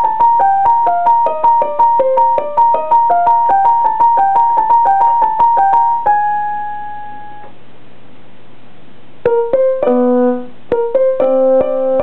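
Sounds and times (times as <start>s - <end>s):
electronic piano note: 0.0s - 7.6s, 9.3s - 12.0s
low hum and hiss: 0.0s - 12.0s.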